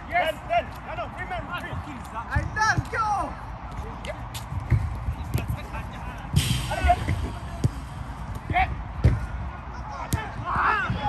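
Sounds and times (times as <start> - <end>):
players shouting: 5.3 - 11.0.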